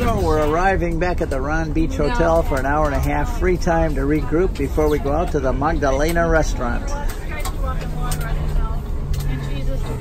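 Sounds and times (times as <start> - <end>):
coach driving interior rumble: 0.0 - 10.0.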